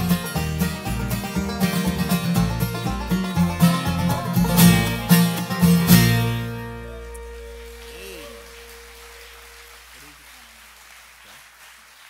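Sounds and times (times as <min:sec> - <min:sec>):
acoustic guitar and mandolin chord: 0:00.0 - 0:09.8
crowd applause: 0:04.7 - 0:12.0.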